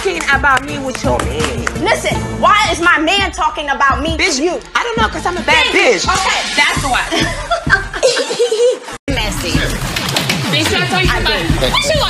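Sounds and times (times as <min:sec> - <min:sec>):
woman laughing: 0:07.1 - 0:09.0.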